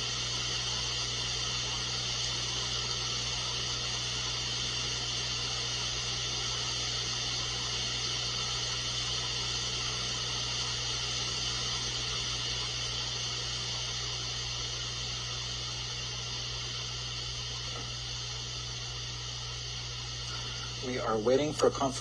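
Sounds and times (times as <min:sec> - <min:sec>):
low electrical hum: 0:00.0 - 0:22.0
steady hiss: 0:00.0 - 0:22.0.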